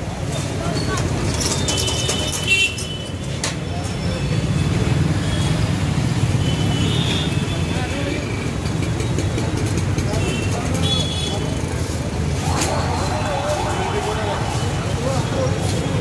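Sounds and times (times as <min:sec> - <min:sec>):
crowd chatter: 0:00.0 - 0:06.4, 0:07.1 - 0:16.0
motorcycle engines rumbling: 0:00.0 - 0:16.0.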